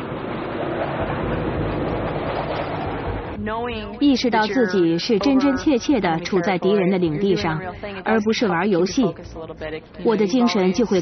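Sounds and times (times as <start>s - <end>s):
jet engine roar: 0.0s - 3.4s
deep jet rumble: 0.0s - 4.4s.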